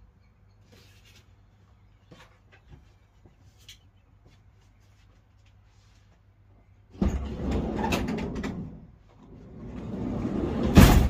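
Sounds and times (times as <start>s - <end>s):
sliding van door rolling: 7.0s - 11.0s.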